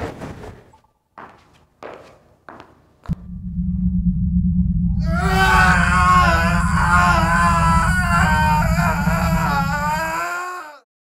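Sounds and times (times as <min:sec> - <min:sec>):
deep rumbling drone: 0:03.1 - 0:10.2
person screaming in pain: 0:05.0 - 0:10.9.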